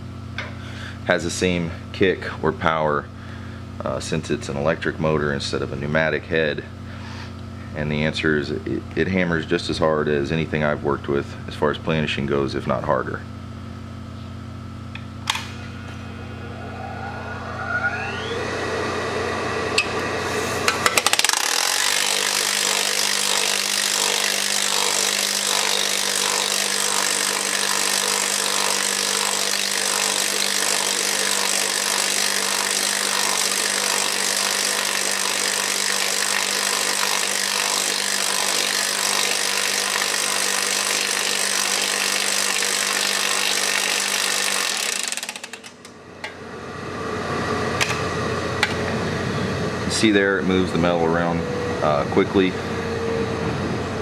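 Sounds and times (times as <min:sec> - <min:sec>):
electric hammer whining: 0:14.4 - 0:54.0.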